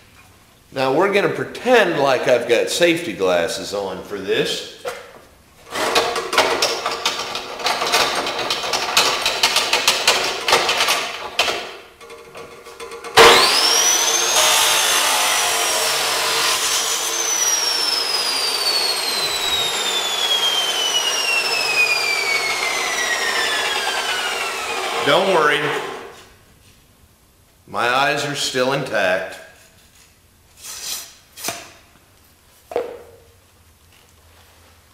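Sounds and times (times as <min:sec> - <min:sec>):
metal part knocking and rattling: 0:05.8 - 0:13.2
chop saw cutting metal: 0:12.9 - 0:26.2.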